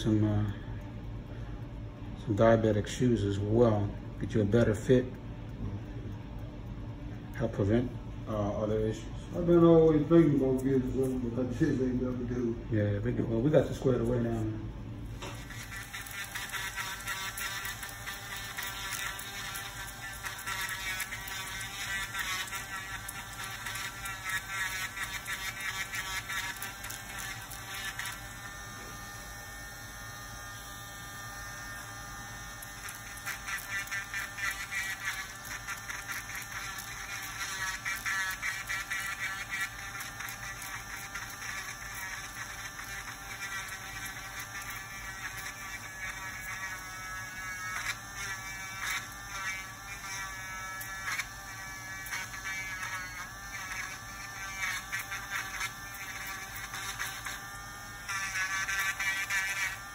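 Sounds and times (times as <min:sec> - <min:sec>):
rotary nail drill whining: 0:15.2 - 0:59.9.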